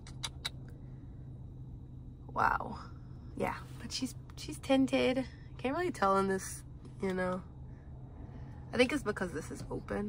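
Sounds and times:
low hum inside car cabin: 0:00.0 - 0:10.0.

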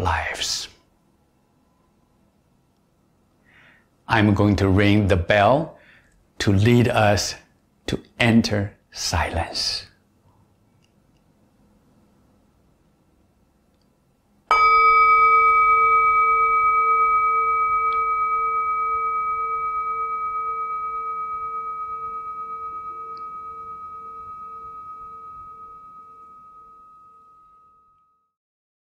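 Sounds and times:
metal singing bowl ringing: 0:14.5 - 0:28.4.

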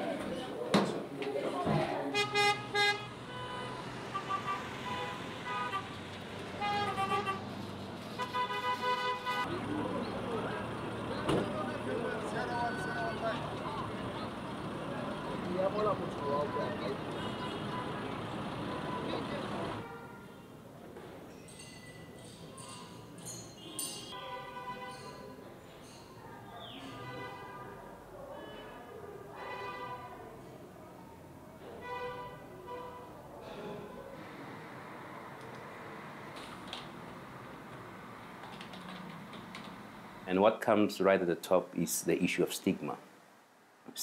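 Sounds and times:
traffic hum: 0:00.0 - 0:44.0
vehicle horns hooting: 0:02.1 - 0:07.5, 0:08.1 - 0:09.5, 0:16.1 - 0:20.5, 0:23.6 - 0:25.3, 0:29.4 - 0:30.1, 0:31.8 - 0:33.2
voices: 0:09.3 - 0:20.0.

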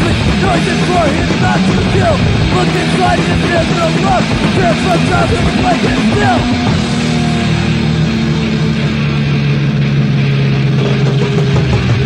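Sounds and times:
distorted electric guitar and bass: 0:00.0 - 0:12.0.

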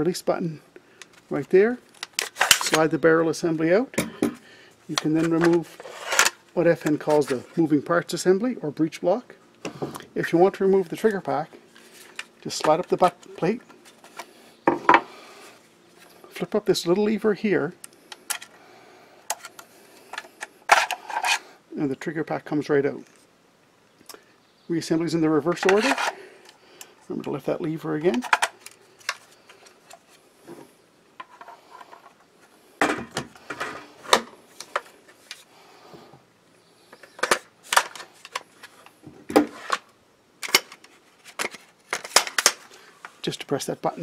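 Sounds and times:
parts knocking on wooden table: 0:14.7 - 0:15.1.

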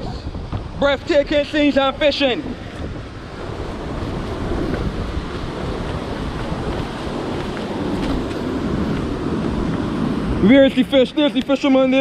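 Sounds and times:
wind rumbling on microphone: 0:00.0 - 0:12.0
surf breaking on rocky shore: 0:00.2 - 0:12.0.

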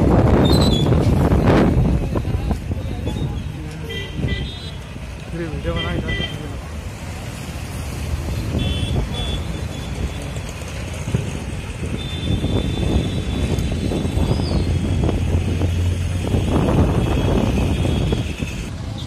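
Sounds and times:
motorcycles passing: 0:00.0 - 0:19.0.

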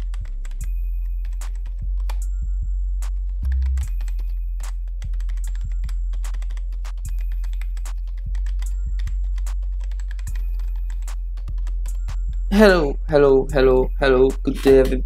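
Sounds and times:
computer keyboard typing: 0:00.0 - 0:02.3, 0:03.1 - 0:12.5
background music with low bass: 0:00.0 - 0:15.0.

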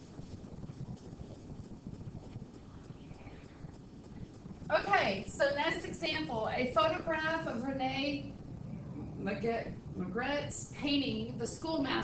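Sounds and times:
faint low rumbling: 0:00.0 - 0:12.0.

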